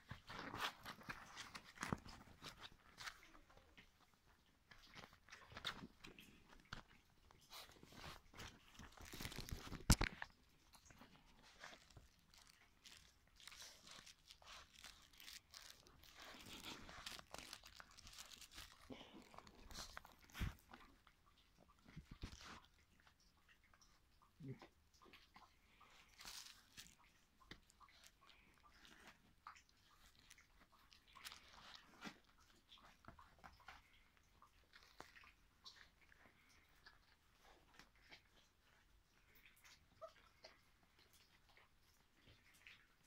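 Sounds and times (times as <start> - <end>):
puppies rustling on fabric: 0.0 - 22.9, 25.8 - 43.0.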